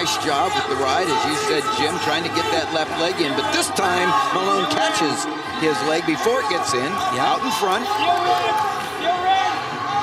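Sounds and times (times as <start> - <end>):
man talking: 0.0 - 9.2.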